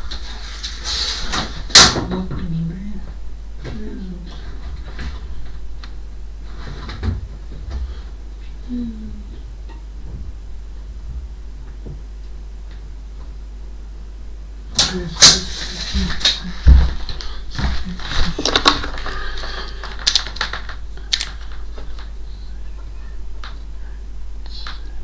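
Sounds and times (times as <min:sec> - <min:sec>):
household items clattering: 0:15.3 - 0:21.5.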